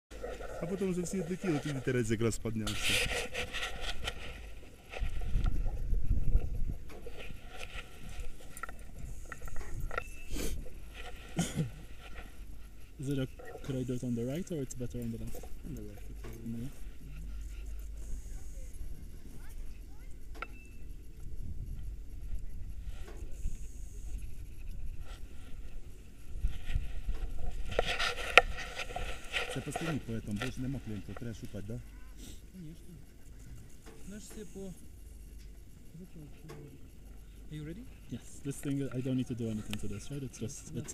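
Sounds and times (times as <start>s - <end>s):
wind rumbling on microphone: 0.1s - 31.9s.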